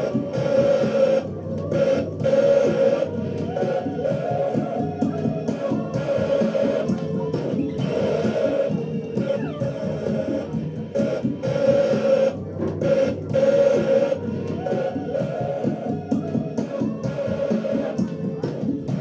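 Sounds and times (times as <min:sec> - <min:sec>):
experimental music from vinyl record: 0:00.0 - 0:19.0.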